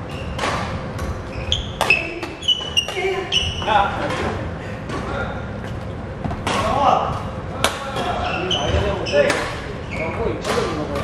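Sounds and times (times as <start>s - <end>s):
players' voices: 1.8s - 11.0s.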